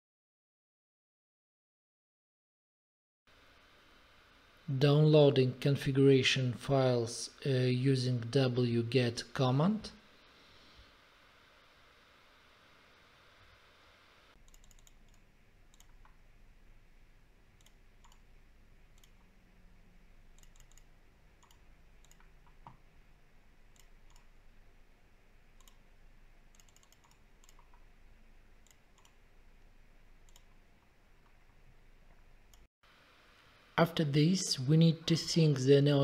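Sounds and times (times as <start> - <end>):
mouse and keyboard clicks: 14.4 - 16.2, 20.4 - 22.8, 26.5 - 27.9.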